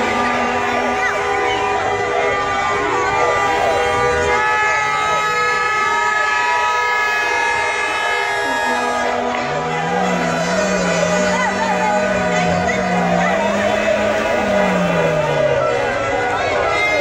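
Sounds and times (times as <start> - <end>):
crowd shouting and chanting: 0.0 - 17.0
horns blasting: 0.0 - 17.0.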